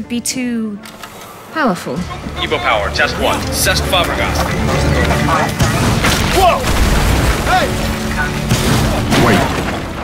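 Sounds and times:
dramatic music: 0.0 - 10.0.

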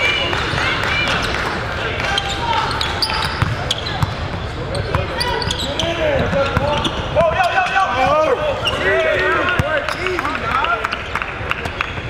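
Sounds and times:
murmur of crowd voices: 0.0 - 12.0
sneakers squeaking: 0.9 - 10.4.

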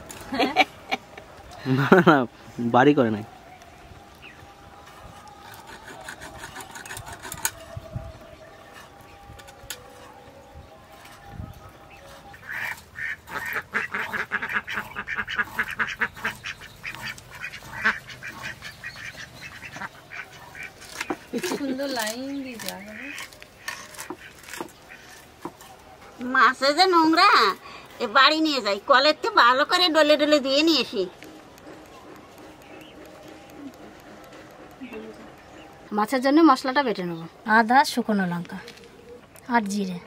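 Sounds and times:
soft bird calls: 3.2 - 26.3, 30.5 - 40.0
ducks quacking: 12.2 - 21.6.

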